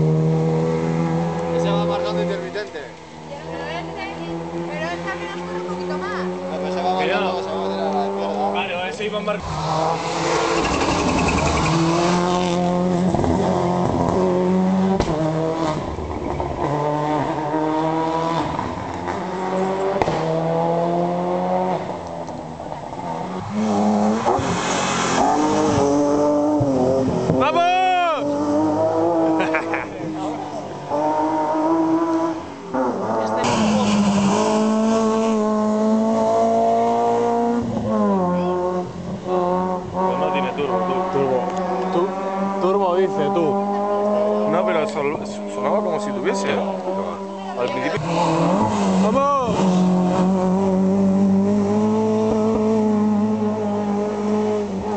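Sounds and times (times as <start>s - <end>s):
rally car engines at full throttle: 0.0s - 54.9s
rally car passing close: 0.0s - 54.9s.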